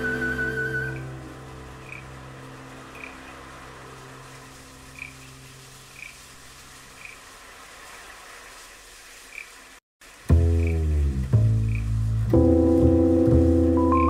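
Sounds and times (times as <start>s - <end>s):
faint hiss: 0.0s - 14.0s
chamber ensemble held chord: 12.3s - 14.0s.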